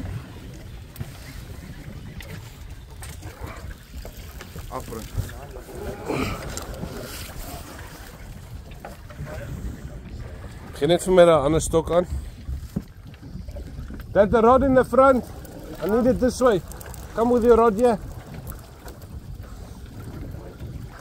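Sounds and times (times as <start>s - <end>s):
boat engine rumble: 0.0s - 21.0s
wind on microphone: 0.0s - 21.0s.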